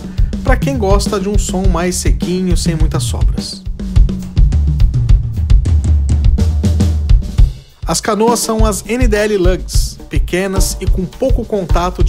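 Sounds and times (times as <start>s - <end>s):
drum and cymbal hits: 0.0s - 12.0s
low drum resonance: 0.3s - 7.6s.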